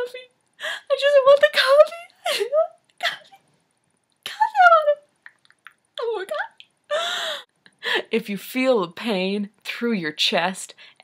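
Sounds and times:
woman mock sobbing: 2.1s - 3.4s.

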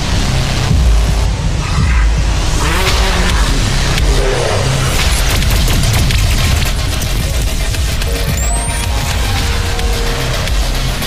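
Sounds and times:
deep rumble: 0.0s - 11.0s.

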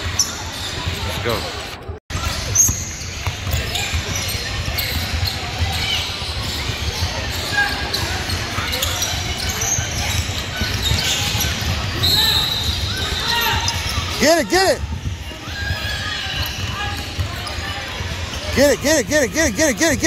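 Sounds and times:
spectators' voices: 3.3s - 20.0s.

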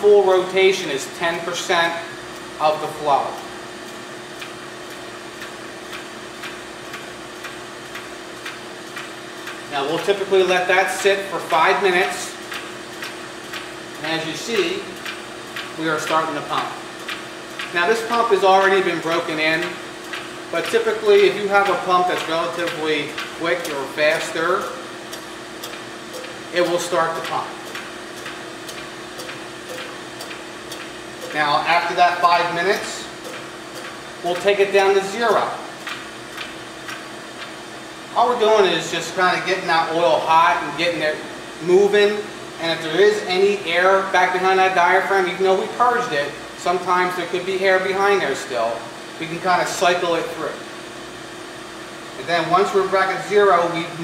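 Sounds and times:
pump ticking: 0.2s - 39.1s.

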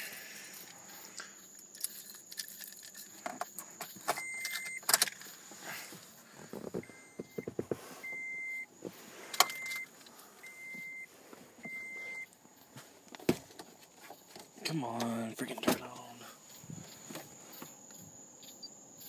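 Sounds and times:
car warning chime beeps: 4.2s - 4.9s, 6.8s - 8.7s, 9.3s - 12.3s.

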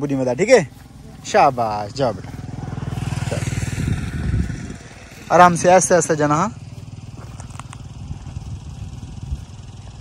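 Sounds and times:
small engine running: 0.0s - 10.0s.

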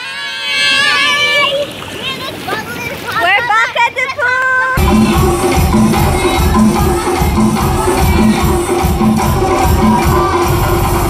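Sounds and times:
water churning and splashing: 0.0s - 11.0s.

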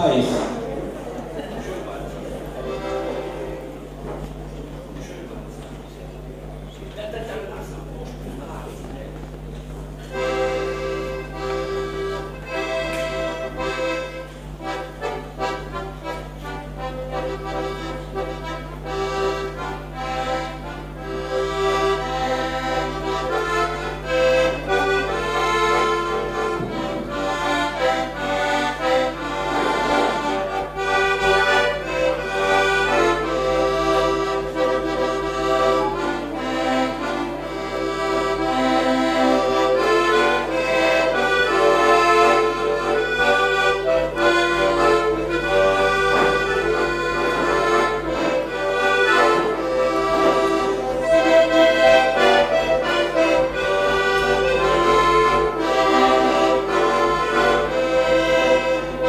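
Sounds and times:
button accordion folk tune: 0.0s - 59.0s.

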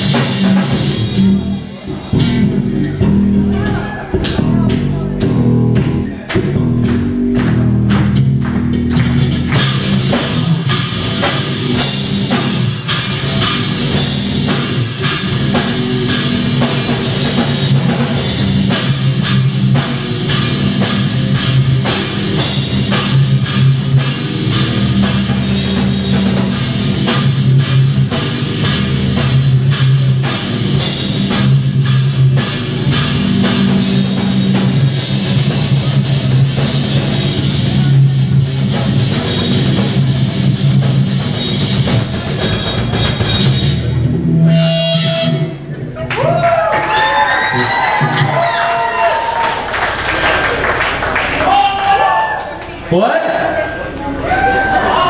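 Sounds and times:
distorted electric guitars: 0.0s - 46.0s, 47.0s - 49.0s
drum kit: 0.0s - 52.5s.

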